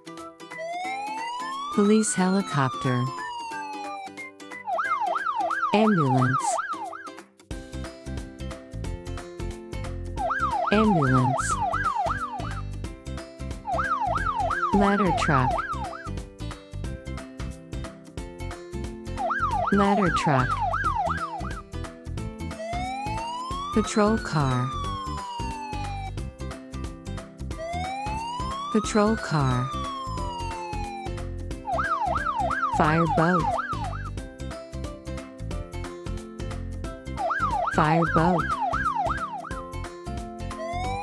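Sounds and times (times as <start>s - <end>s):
cartoon fire truck siren: 0.5s - 7.1s, 10.2s - 12.6s, 13.7s - 16.1s, 19.2s - 21.6s, 22.5s - 26.2s, 27.5s - 34.1s, 37.2s - 39.6s, 40.5s - 41.0s
police siren wail: 0.5s - 7.1s, 10.2s - 12.6s, 13.7s - 16.1s, 19.2s - 21.6s, 22.5s - 26.2s, 27.5s - 34.1s, 37.2s - 39.6s, 40.5s - 41.0s
background music with steady beat: 3.2s - 41.0s.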